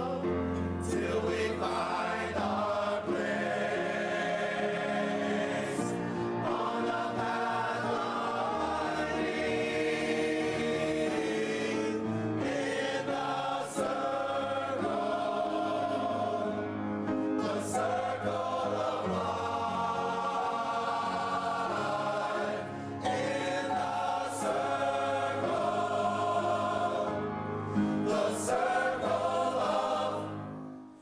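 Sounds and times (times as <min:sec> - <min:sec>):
men's chorus singing: 0:00.0 - 0:30.7.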